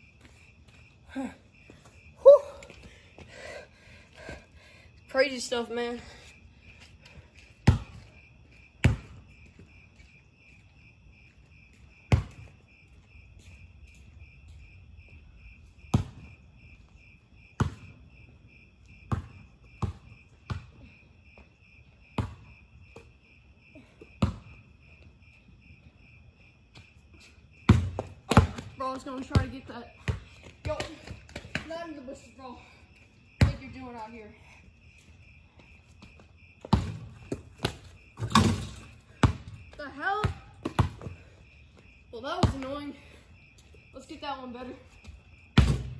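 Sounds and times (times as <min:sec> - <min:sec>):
crickets chirping: 0:00.0 - 0:45.9
basketball bouncing on pavement: 0:06.8 - 0:10.6, 0:11.7 - 0:13.6, 0:15.8 - 0:16.4, 0:17.0 - 0:25.0, 0:26.7 - 0:32.3, 0:33.3 - 0:34.3, 0:35.2 - 0:43.0, 0:44.9 - 0:45.9.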